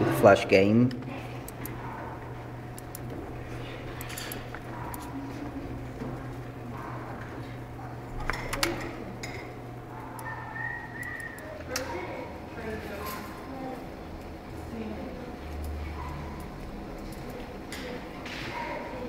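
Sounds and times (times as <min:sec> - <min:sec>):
children's voices: 0:14.6 - 0:19.0.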